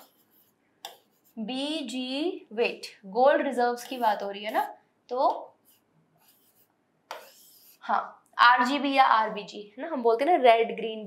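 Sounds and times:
stylus scratching on screen: 0.0 - 1.7, 3.6 - 8.2.

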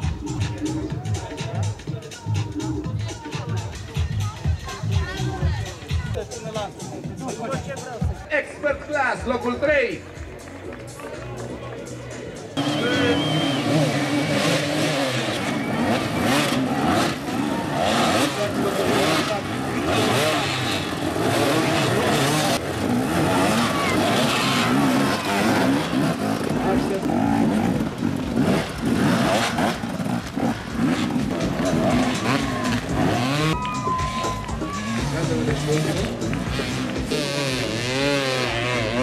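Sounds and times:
dirt bikes revving: 0.0 - 39.0.

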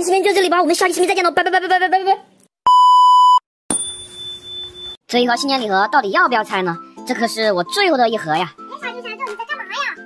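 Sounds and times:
high electronic beep: 2.7 - 5.0.

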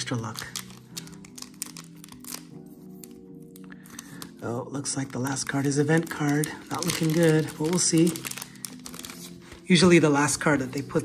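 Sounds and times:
foil wrapper crinkling and tearing: 0.0 - 9.8
soft background music: 0.0 - 11.0.

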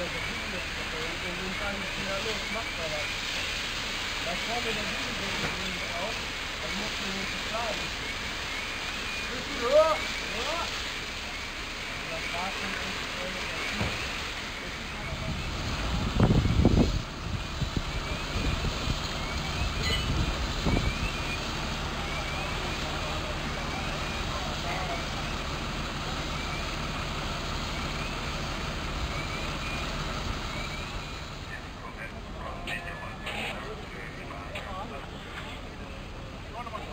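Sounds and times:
fire engines running: 0.0 - 36.9
fire hose water jets: 0.0 - 36.9
faint short chirp: 19.8 - 21.4.

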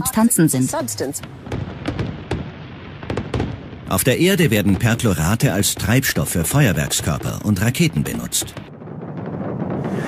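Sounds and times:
fireworks popping and crackling: 0.7 - 10.0.

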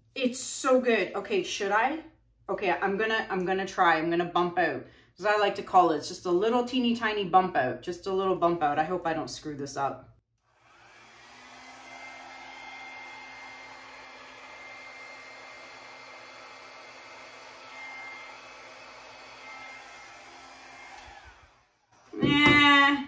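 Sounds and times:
hair dryer blowing: 10.4 - 23.0.

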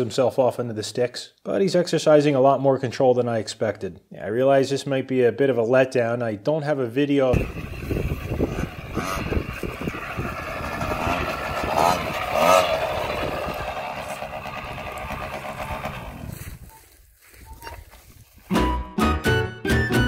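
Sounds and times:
small motorcycle engine revving: 7.3 - 16.7
guitar music: 18.5 - 20.0.

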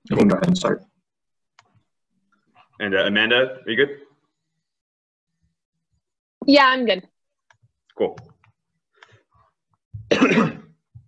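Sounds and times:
person clearing throat: 10.1 - 10.8.

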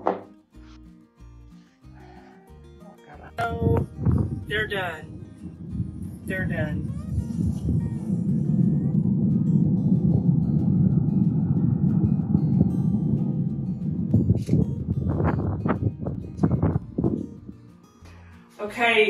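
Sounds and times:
wind buffeting microphone: 3.2 - 17.7.

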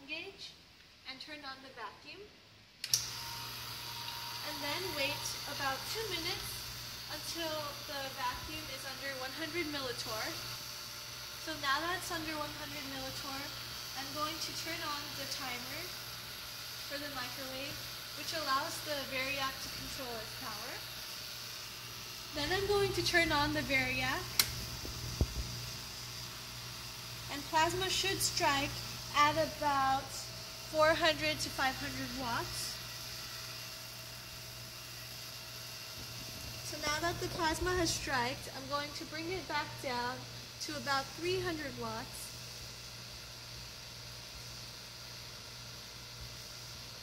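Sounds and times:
low electrical hum: 0.0 - 47.0
sharp click: 2.8 - 3.1, 24.3 - 24.6
even hiss: 2.8 - 47.0
vacuum pump running: 2.8 - 47.0.

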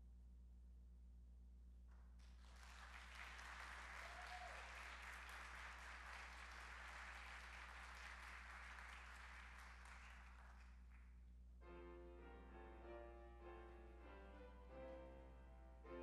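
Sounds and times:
crowd applauding: 2.2 - 11.0.

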